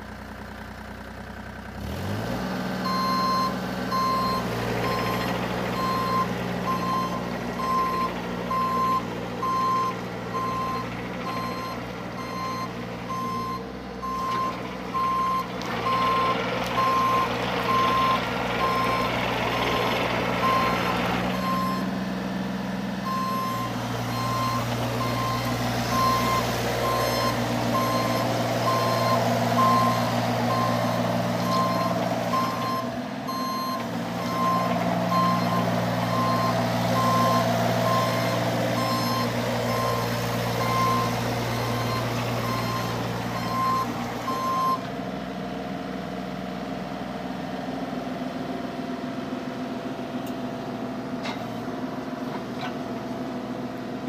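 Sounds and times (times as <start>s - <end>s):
diesel engine running: 0.0s - 54.0s
excavator alarm beeping: 2.8s - 22.0s, 23.0s - 44.9s.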